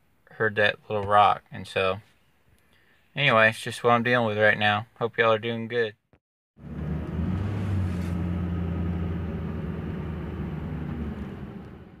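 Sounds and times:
engine humming: 6.6 - 12.0.

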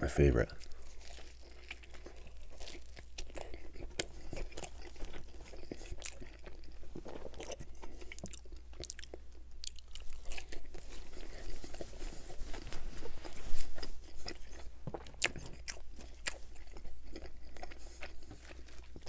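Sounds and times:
pizza crust crunching: 0.2 - 19.0.

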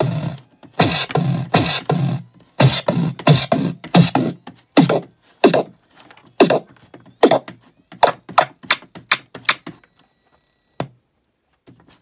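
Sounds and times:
toy beat machine drum pattern: 0.0 - 9.9.

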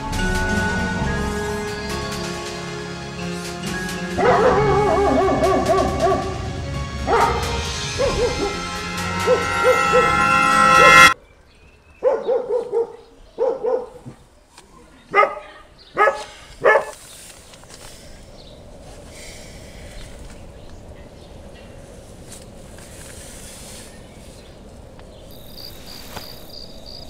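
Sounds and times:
music: 0.0 - 11.2.

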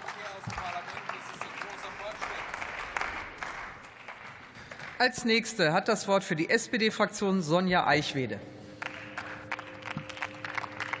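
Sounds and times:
scattered applause: 0.0 - 5.0, 8.8 - 11.0.

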